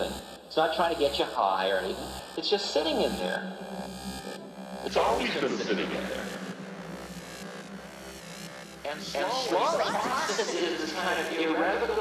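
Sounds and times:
low electronic drone: 0:00.0 - 0:12.0.

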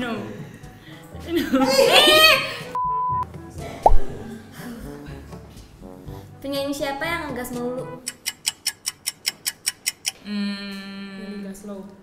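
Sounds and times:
clock ticking: 0:08.0 - 0:10.2.

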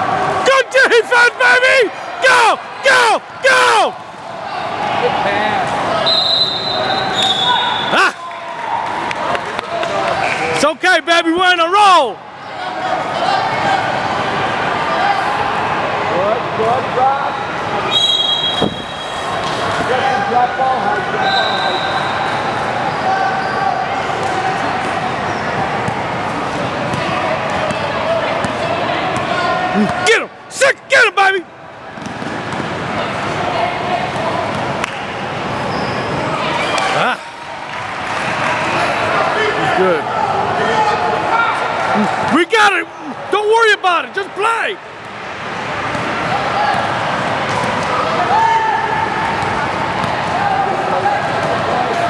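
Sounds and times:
basketball bouncing on court: 0:32.0 - 0:32.8.

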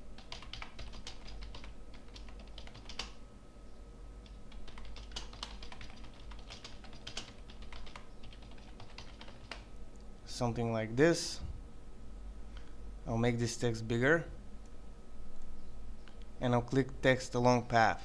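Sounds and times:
computer keyboard typing: 0:00.2 - 0:03.2, 0:04.2 - 0:09.7.

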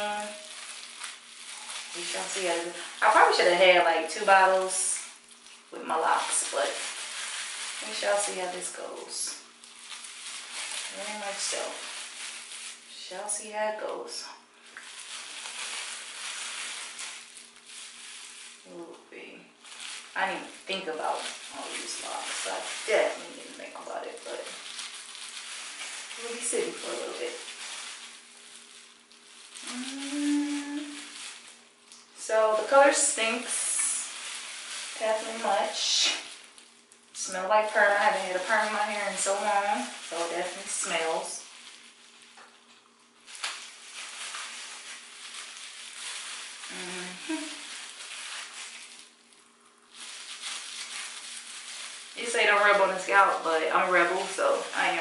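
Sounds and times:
plastic gloves rustling: 0:00.0 - 0:55.0
woman humming a rising note: 0:29.6 - 0:31.0.

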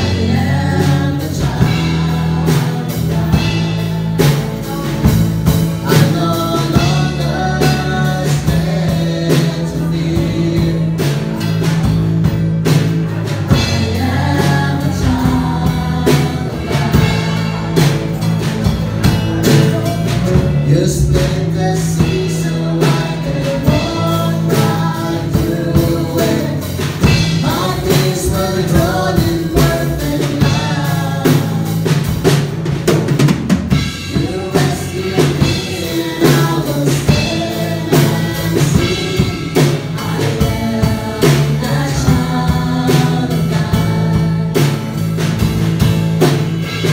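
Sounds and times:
voices singing together: 0:00.0 - 0:32.9, 0:33.7 - 0:46.9
acoustic guitar: 0:00.0 - 0:46.9
bass guitar: 0:00.0 - 0:46.9
drum hits: 0:00.0 - 0:46.9
live band playing: 0:00.0 - 0:46.9.

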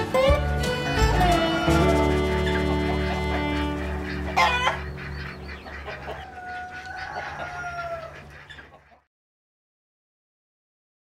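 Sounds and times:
chicken squawking: 0:00.3 - 0:09.0
rooster crowing: 0:05.9 - 0:08.3.

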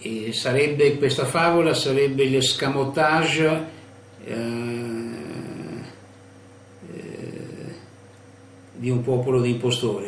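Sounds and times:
man's rough throat sound: 0:04.2 - 0:06.0, 0:06.8 - 0:07.9.

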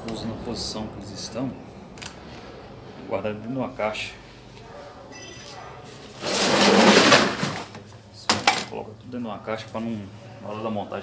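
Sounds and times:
plastic cover scraping rustle: 0:06.0 - 0:07.8.

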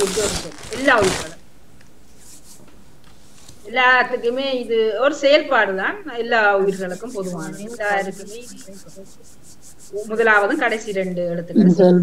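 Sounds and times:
pulsing high hiss: 0:00.0 - 0:01.1, 0:04.1 - 0:11.4
woman speaking: 0:00.0 - 0:01.4, 0:03.7 - 0:09.1, 0:10.0 - 0:12.0.

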